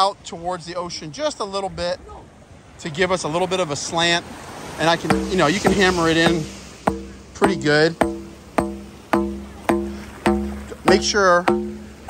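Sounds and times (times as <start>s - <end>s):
rubber mallet striking plastic pipe: 5.0s - 12.0s.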